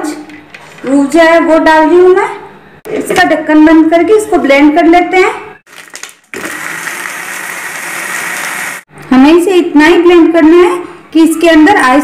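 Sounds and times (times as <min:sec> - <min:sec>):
ice churning in blender jar: 0:05.7 - 0:08.8
blender whining: 0:06.3 - 0:08.9.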